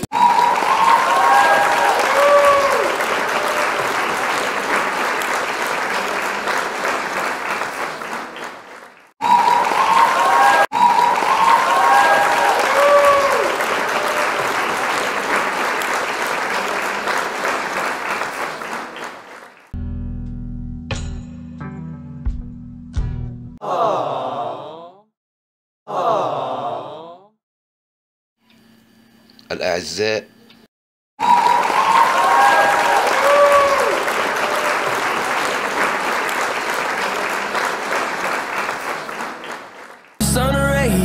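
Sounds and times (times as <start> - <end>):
cheering calls: 0.0 - 19.5, 23.6 - 24.9, 25.9 - 27.3, 31.2 - 40.7
crowd applause: 0.0 - 19.8, 31.2 - 41.0.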